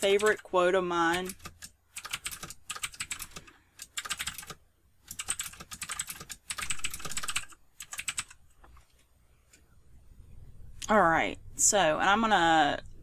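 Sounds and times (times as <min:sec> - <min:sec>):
typing on computer keyboard: 0:01.1 - 0:08.4.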